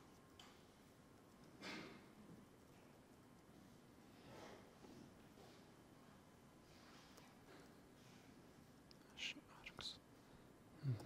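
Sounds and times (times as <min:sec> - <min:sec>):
man muttering: 0:10.8 - 0:11.0.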